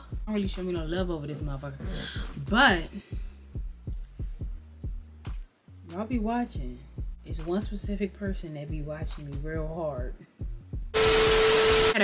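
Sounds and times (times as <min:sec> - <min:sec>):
loud static hiss: 0:11.0 - 0:12.0
steady hum tone: 0:11.0 - 0:12.0.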